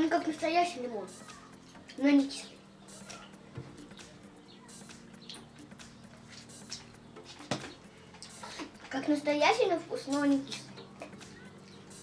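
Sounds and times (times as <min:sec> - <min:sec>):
chopsticks clicking and rustling: 0:06.1 - 0:09.0.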